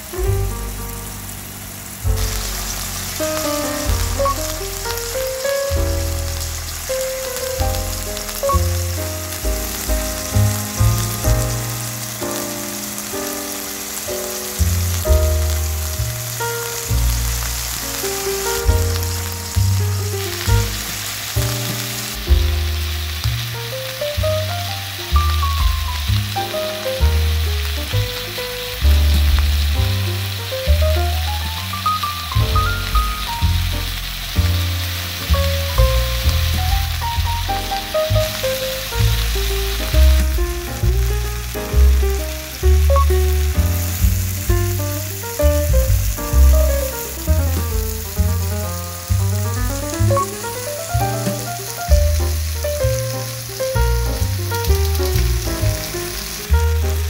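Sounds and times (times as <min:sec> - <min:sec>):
background music: 0:00.0 - 0:57.0
steak sizzling in a pan: 0:00.0 - 0:57.0.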